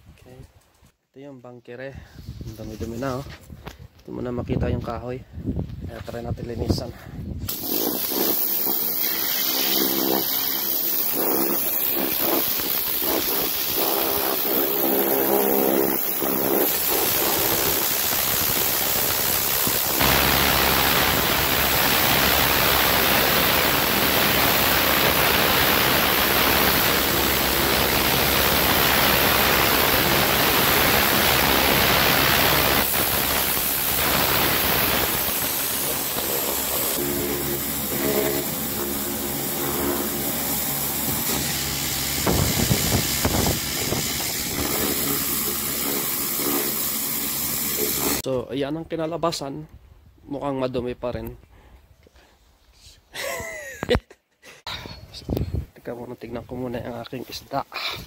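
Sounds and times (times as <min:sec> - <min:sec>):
pressure washer pump humming: 0:07.5 - 0:48.2
water jet hissing: 0:07.5 - 0:48.2.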